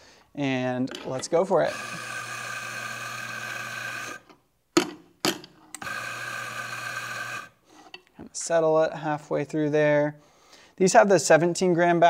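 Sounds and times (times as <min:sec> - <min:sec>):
coffee grinder motor running: 0:01.6 - 0:04.2, 0:05.8 - 0:07.6.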